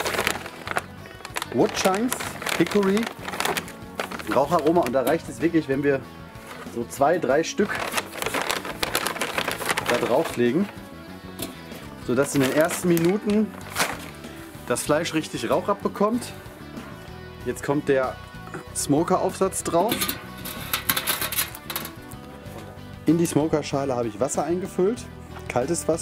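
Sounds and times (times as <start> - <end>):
bag crinkling: 0.0 - 5.2, 7.6 - 10.8, 11.4 - 14.5
metal smoker section rattling: 19.7 - 22.0.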